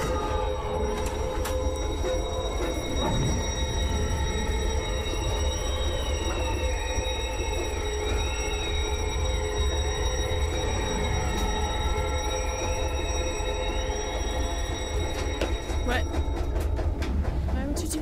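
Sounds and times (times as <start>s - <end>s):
deep rumble: 0.0s - 18.0s
eerie music: 0.0s - 18.0s.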